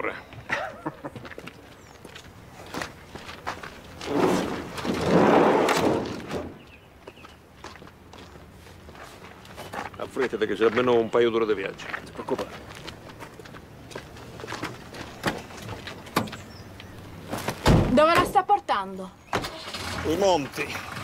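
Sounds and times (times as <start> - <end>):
footsteps: 0.3 - 18.3
van sliding door rumbling: 4.0 - 6.6, 19.4 - 21.0.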